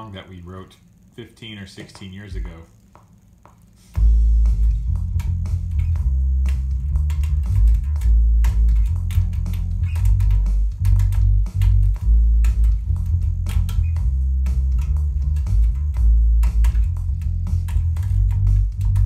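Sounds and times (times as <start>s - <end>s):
electric bass guitar riff: 4.0s - 19.0s.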